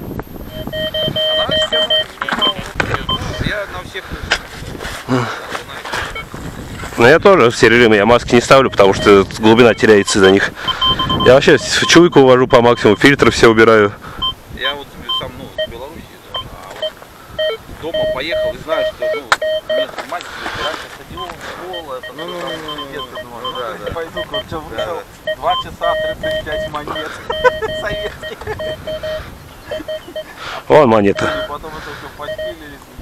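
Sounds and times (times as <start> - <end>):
metal detector tone and beeps: 0.3 - 3.6, 6.0 - 6.3, 7.6 - 13.4, 14.2 - 14.4, 15.1 - 32.8.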